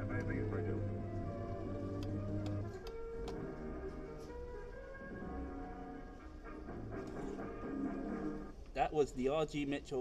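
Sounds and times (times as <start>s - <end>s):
kiddie ride music: 0.0s - 8.5s.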